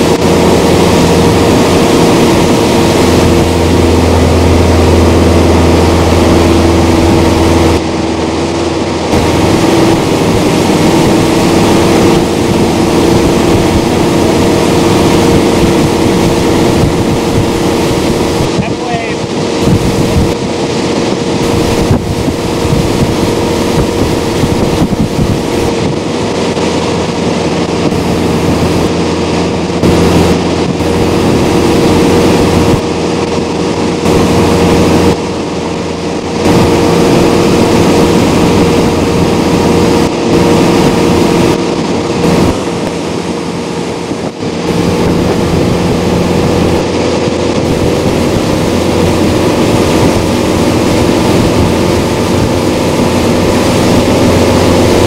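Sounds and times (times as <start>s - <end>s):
motorboat engine running: 0.0s - 55.0s
rush of boat wake: 0.0s - 55.0s
wind buffeting microphone: 0.0s - 55.0s.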